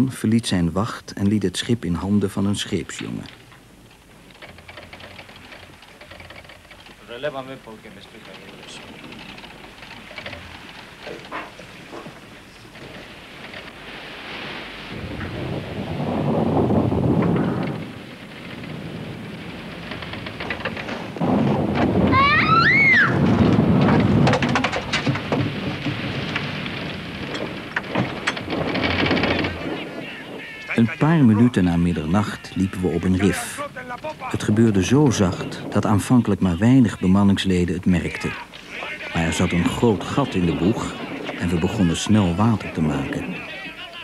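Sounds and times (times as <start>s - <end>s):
rough sea rushing: 4.5s - 44.0s.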